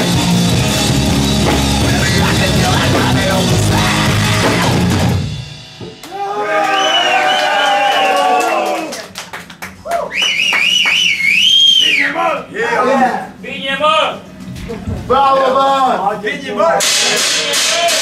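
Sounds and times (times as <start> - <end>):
live rock band music: 0.0 - 6.0
crowd shouting: 6.0 - 9.0, 17.5 - 18.0
people clapping: 6.0 - 11.5
long wavering whistle: 6.6 - 7.9, 10.1 - 12.2.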